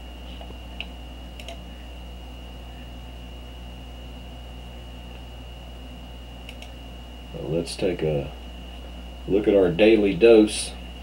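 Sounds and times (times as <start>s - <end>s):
electrical hum: 0.0s - 11.0s
thin high whine: 0.0s - 11.0s
faint clicks: 0.8s - 1.6s, 6.4s - 6.8s.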